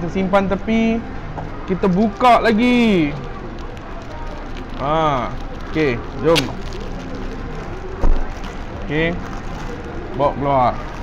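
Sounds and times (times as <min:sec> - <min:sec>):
plastic bag crinkling: 0:01.8 - 0:11.0.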